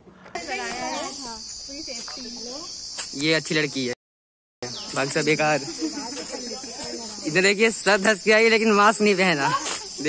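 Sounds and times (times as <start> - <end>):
high-pitched insect drone: 0.4 - 4.0, 4.6 - 10.0.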